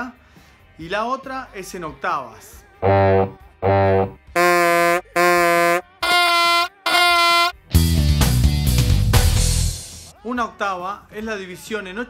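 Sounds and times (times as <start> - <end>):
held musical note tones: 2.8 - 7.5.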